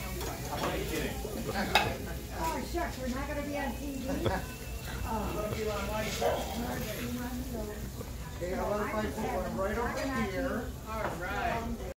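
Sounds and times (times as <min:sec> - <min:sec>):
cheese sizzling in metal pans: 0:00.0 - 0:11.9.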